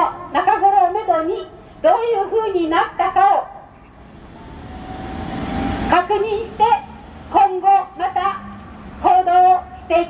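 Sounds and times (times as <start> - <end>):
passing vehicle engine and tyres: 3.8 - 10.0.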